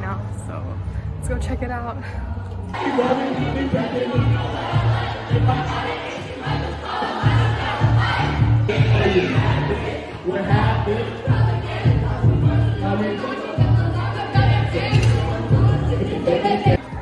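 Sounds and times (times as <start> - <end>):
people singing along: 2.7 - 17.0
pop backing track with bass beat: 7.2 - 17.0.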